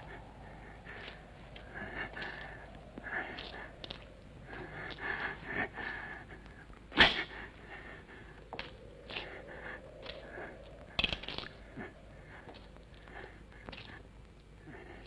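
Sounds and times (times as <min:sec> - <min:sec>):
faint breathy voice-like sounds: 0:00.0 - 0:15.0.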